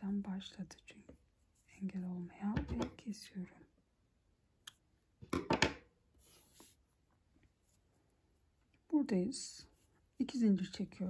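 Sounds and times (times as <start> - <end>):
soft rustle: 6.2 - 11.0.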